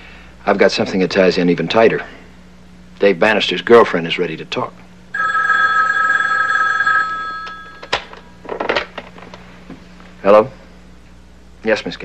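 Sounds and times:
telephone two-tone ring: 5.2s - 8.0s.

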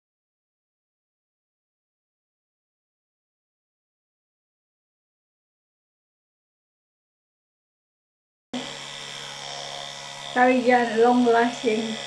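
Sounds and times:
electric toothbrush buzzing: 8.6s - 12.0s.

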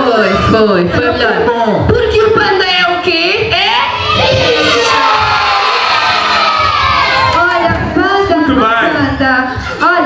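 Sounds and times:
young children shouting together: 3.8s - 7.4s.

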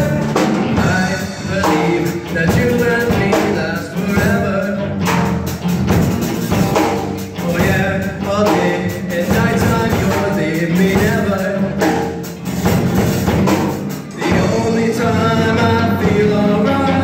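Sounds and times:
person singing: 0.0s - 5.3s, 7.2s - 12.3s, 14.0s - 17.0s
bass guitar: 0.0s - 17.0s
drum kit: 0.0s - 17.0s
electric guitars: 0.0s - 17.0s.

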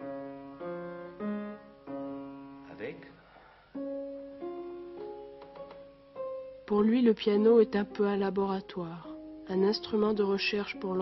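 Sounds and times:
muted fortepiano melody: 3.8s - 11.0s.

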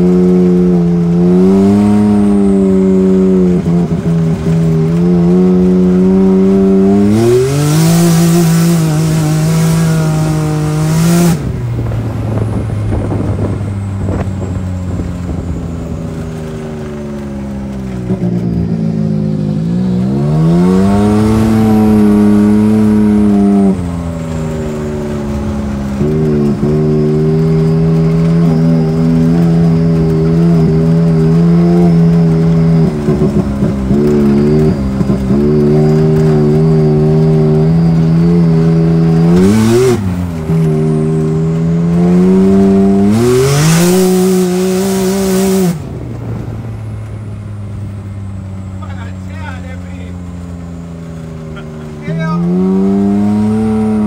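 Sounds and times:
utility vehicle engine revving: 0.0s - 54.0s.

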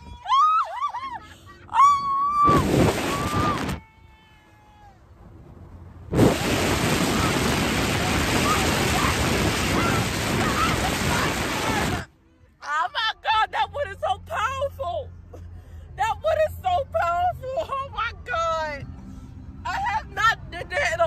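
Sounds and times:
woman squealing yells: 0.0s - 5.0s, 8.4s - 12.0s
wind rushing over microphone: 2.1s - 3.8s, 6.1s - 12.1s.

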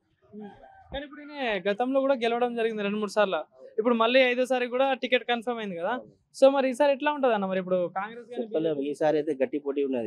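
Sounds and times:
rooster crowing: 0.4s - 1.0s.

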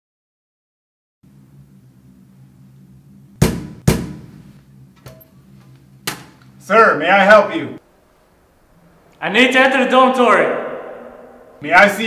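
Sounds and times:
knocks on a metal door: 3.4s - 4.3s.

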